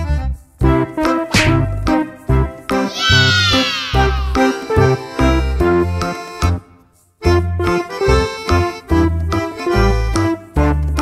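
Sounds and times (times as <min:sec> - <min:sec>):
upbeat children's music: 0:00.0 - 0:11.0
high cry sliding downward: 0:02.9 - 0:04.8.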